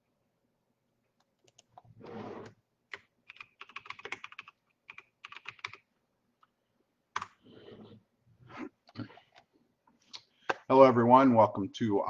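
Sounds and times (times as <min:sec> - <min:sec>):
computer keyboard typing: 0:01.3 - 0:01.8, 0:02.9 - 0:05.8, 0:07.2 - 0:07.4.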